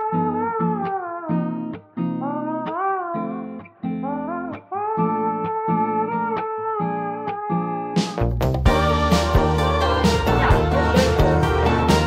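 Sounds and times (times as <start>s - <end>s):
guitar music: 0.0s - 12.0s.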